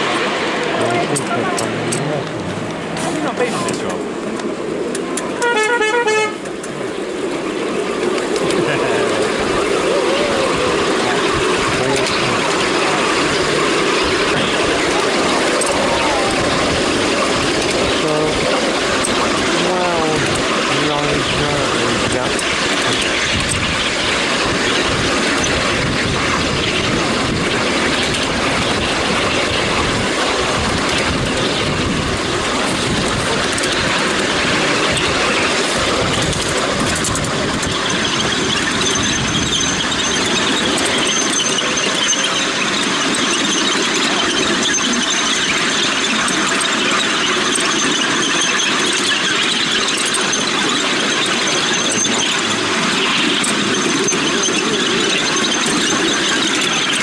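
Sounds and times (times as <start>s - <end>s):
miniature train running on track: 0.0s - 57.0s
wavering squeals: 8.4s - 57.0s.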